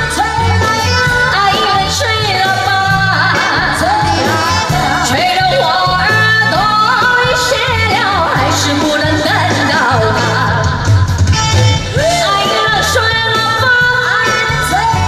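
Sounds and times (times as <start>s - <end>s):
pop band with repeating bass line: 0.0s - 15.0s
woman singing into a microphone: 0.0s - 15.0s.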